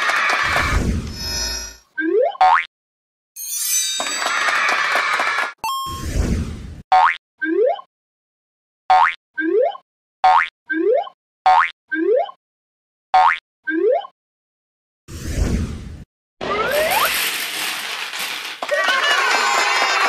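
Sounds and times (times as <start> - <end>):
shimmering sparkle with ding: 3.4 - 4.5.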